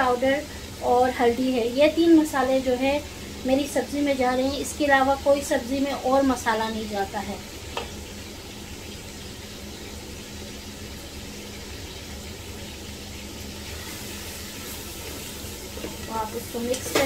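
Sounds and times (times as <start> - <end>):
masala sizzling in hot oil: 0.0 - 17.0.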